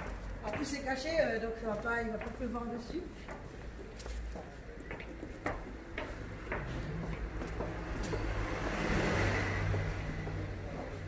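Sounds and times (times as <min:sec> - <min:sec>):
vehicle passing by: 0:06.2 - 0:11.0.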